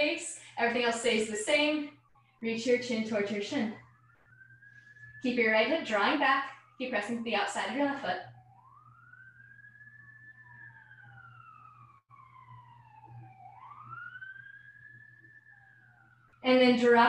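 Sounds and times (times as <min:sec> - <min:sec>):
faint siren wailing: 0:00.0 - 0:17.0
low steady hum: 0:00.0 - 0:17.0.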